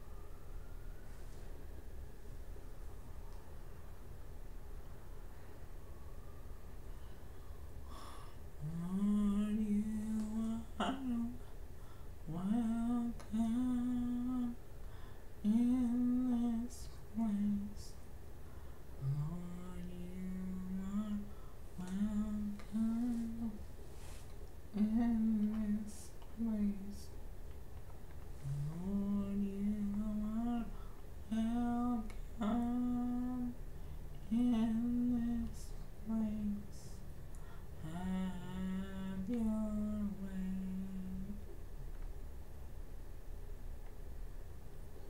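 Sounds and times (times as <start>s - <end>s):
woman humming: 7.9s - 11.4s, 19.0s - 23.6s, 28.4s - 30.7s, 31.3s - 33.6s, 34.3s - 37.0s, 37.8s - 41.5s.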